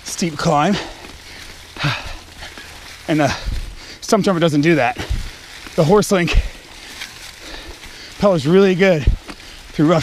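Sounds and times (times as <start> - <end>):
bike tyres rolling over leaves: 0.0 - 10.0.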